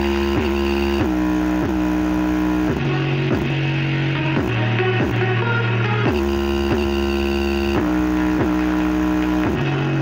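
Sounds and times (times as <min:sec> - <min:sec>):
bass-heavy music through woofer: 0:00.0 - 0:10.0.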